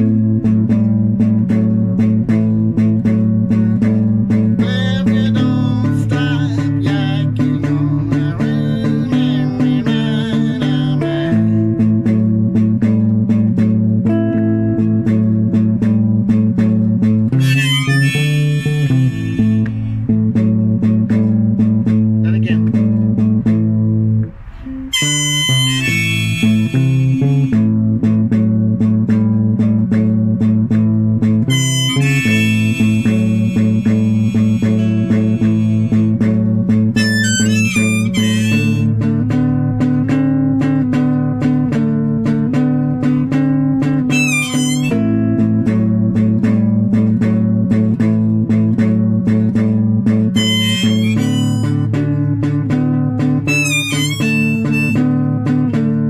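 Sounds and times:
plucked guitar notes: 0.0 - 56.0
high wavering melodic phrases: 17.3 - 28.2, 31.3 - 41.7, 42.3 - 46.8, 48.5 - 55.7.

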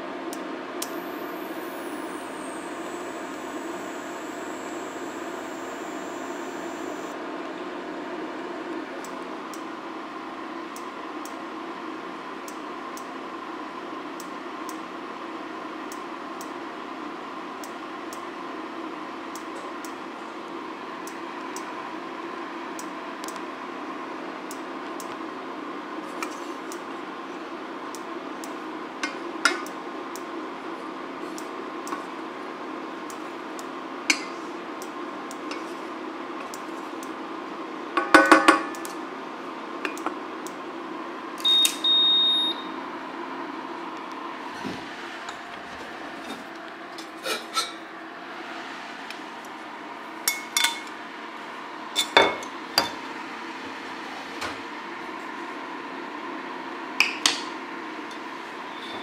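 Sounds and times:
induction hob humming: 0.3 - 11.4.

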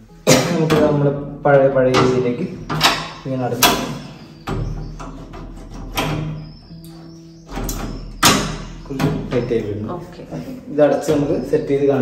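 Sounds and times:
background music: 0.0 - 12.0
metal table panel clacking: 0.5 - 9.5.

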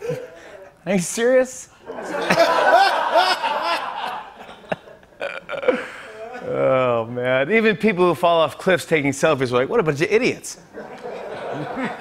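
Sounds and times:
man laughing: 2.0 - 6.9.

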